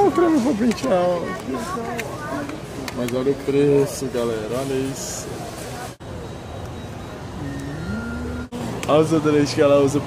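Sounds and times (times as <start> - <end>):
sustained pitched tone: 6.6 - 8.6.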